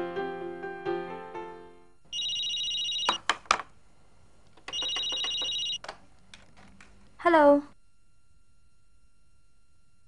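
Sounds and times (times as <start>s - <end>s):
telephone ringing electronic trill: 2.1s - 3.2s, 4.7s - 5.8s.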